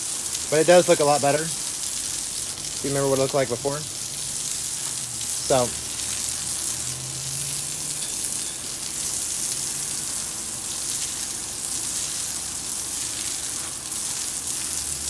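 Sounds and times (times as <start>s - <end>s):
hose water spraying on wall: 0.0s - 15.0s.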